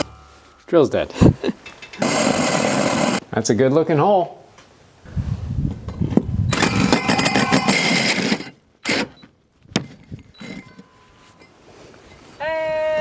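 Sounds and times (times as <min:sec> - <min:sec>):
drill with hole saw cutting wood: 0:02.0 - 0:03.2, 0:06.5 - 0:09.2.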